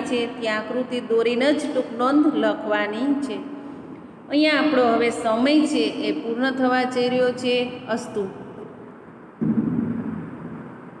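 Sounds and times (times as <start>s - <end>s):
microphone handling rumble: 9.4s - 11.0s.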